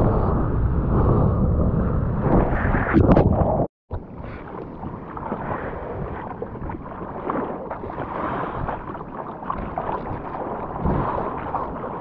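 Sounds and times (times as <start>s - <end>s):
wind on microphone: 0.0s - 12.0s
water sloshing and splashing: 2.2s - 12.0s.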